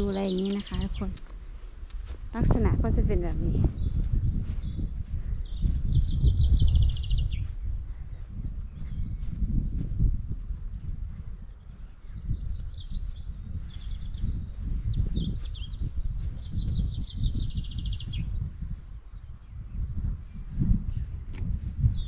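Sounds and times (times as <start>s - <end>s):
songbird trilling: 0.0s - 1.2s, 5.3s - 7.4s, 12.0s - 18.4s
steady low rumble: 0.0s - 22.0s.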